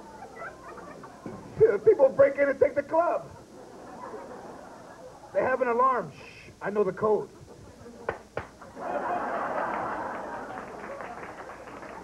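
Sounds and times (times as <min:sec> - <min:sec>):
audience laughter: 0:00.1 - 0:01.2, 0:03.3 - 0:05.4, 0:08.6 - 0:12.0.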